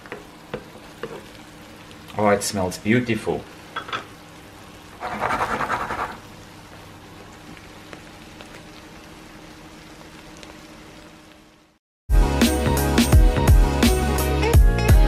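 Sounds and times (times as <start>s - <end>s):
frying crackling: 0.0s - 11.8s
potatoes sizzling in a pan: 0.0s - 11.8s.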